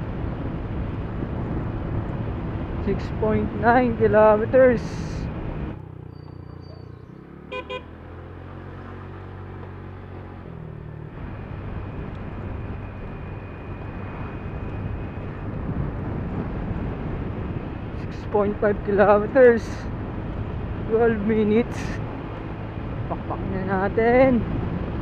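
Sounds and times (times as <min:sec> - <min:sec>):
road and wind noise: 0:00.0 - 0:25.0
short horn beeps: 0:07.5 - 0:07.9.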